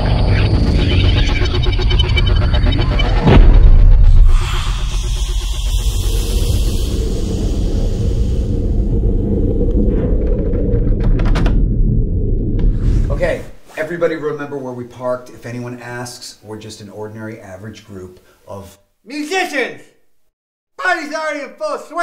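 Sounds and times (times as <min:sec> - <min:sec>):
loud rush of noise: 0:00.0 - 0:10.7
low rumble: 0:00.0 - 0:13.5.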